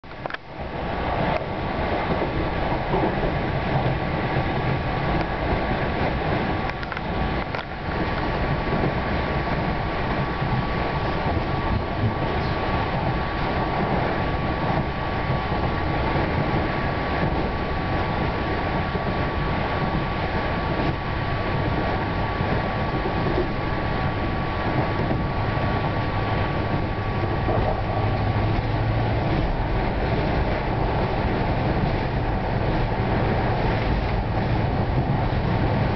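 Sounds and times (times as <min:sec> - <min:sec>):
train wheels rumbling on track: 0:00.0 - 0:35.9.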